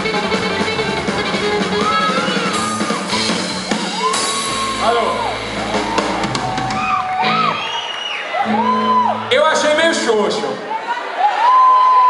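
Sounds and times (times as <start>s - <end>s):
live rock band playing: 0.0s - 10.6s
audience whooping and shouting: 1.6s - 12.0s.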